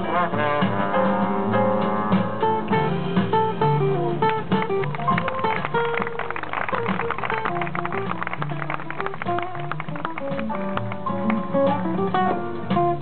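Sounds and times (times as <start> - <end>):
busy percussion: 0.0 - 13.0
guitar: 0.0 - 13.0
horns: 0.0 - 13.0
jazz band playing: 0.0 - 13.0
upright bass notes: 0.0 - 13.0.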